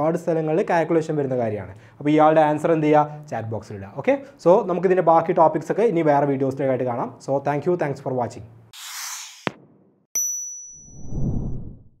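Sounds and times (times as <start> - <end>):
ringing ding: 10.2 - 11.4.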